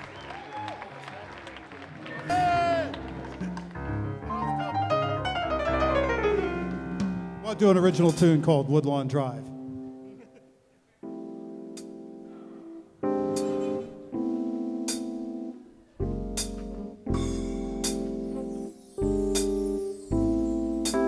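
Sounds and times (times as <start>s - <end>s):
electric keyboard chords: 1.3s - 21.0s.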